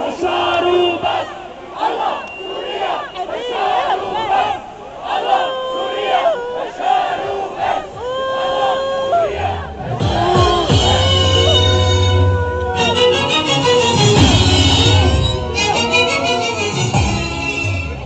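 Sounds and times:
crowd shouting: 0.0 - 17.1.

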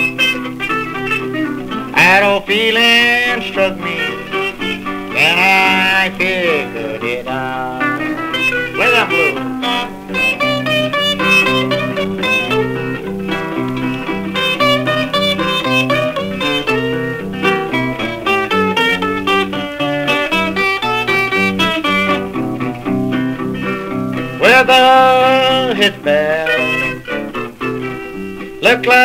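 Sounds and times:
rockabilly guitar solo: 0.0 - 29.0.

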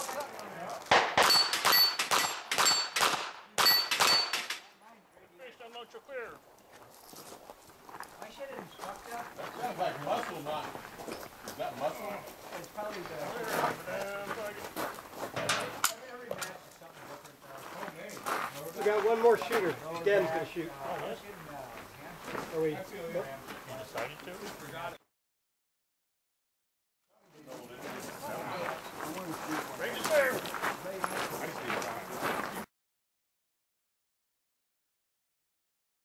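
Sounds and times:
people conversing: 0.0 - 25.0, 27.1 - 32.6
indistinct voices talking: 8.2 - 25.0, 27.3 - 32.6.

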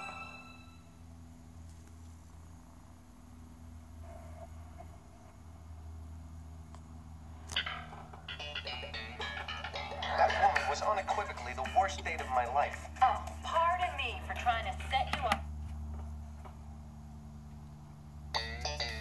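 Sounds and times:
low steady hum: 0.0 - 19.0
menu voices and music: 9.3 - 15.2.

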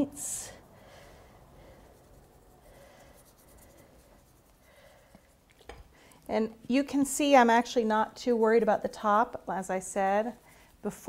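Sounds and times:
paintbrush rubbing on fondant: 1.4 - 5.6, 6.6 - 11.0.

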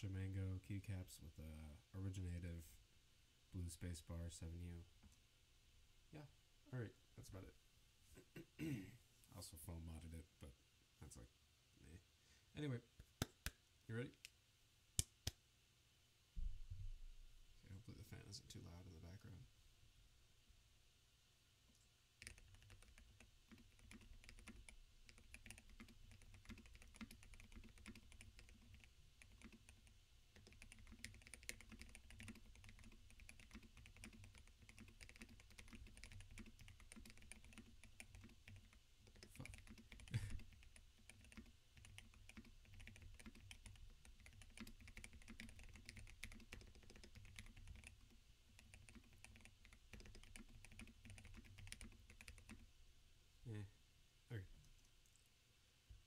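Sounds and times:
fast typing on a mechanical keyboard: 22.2 - 52.6.

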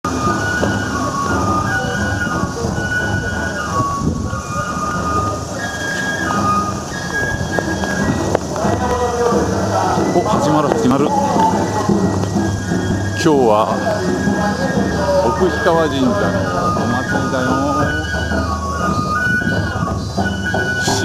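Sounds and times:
melody of high held notes: 0.1 - 21.0
steady low street rumble: 0.1 - 21.0.

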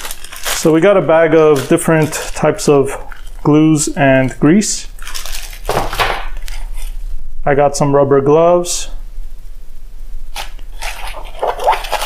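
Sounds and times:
rubber gloves and fabric pouch rustling: 0.0 - 3.5, 10.3 - 12.0.

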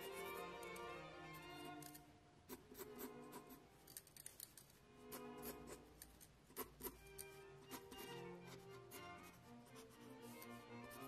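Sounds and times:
pencil scratching on paper: 0.0 - 0.8, 1.4 - 11.0
faint background music: 0.0 - 11.0.

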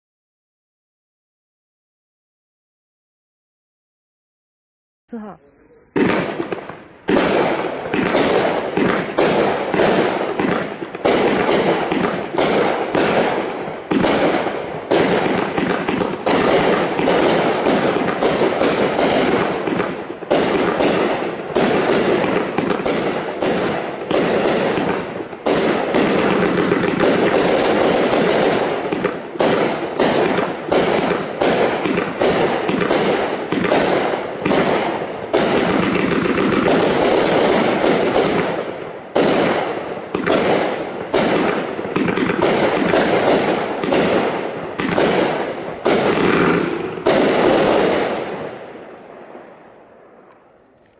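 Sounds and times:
firework cake shots and bursts: 5.1 - 48.9.

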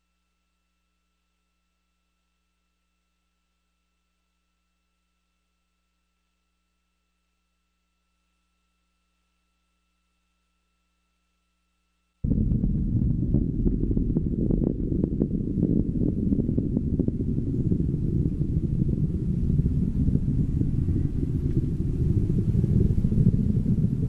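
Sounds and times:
deep rocket rumble: 12.2 - 24.0.

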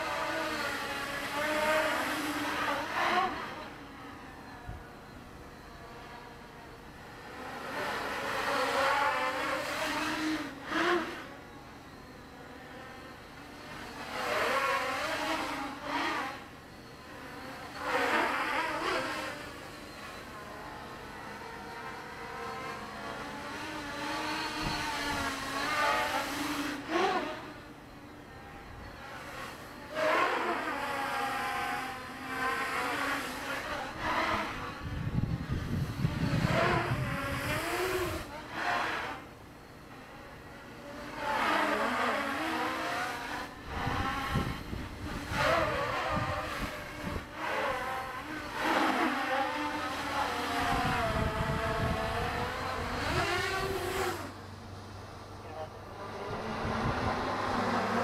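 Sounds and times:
drone motors whining: 0.0 - 58.0.

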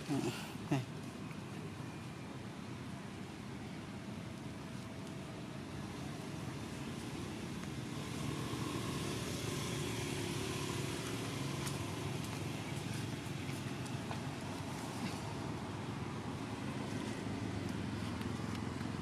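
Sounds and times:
low rumbling background noise: 0.0 - 19.0.

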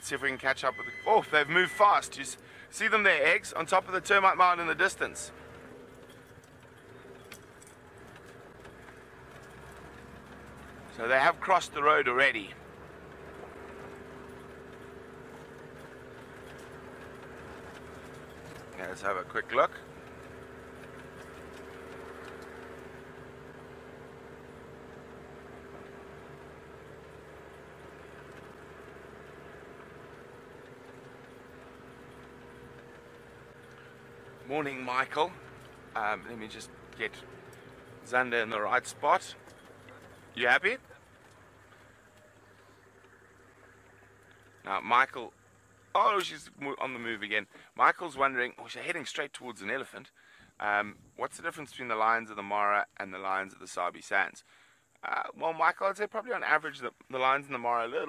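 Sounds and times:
vehicle engine running: 0.0 - 48.9
road noise: 0.0 - 58.0.

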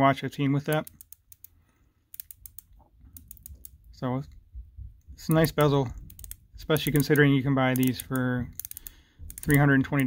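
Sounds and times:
watch bezel ratcheting clicks: 0.7 - 3.9, 5.3 - 10.0.

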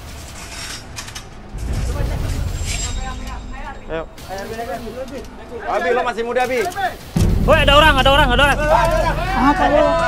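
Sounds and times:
low rumbling noise: 1.2 - 6.3, 7.0 - 10.0.

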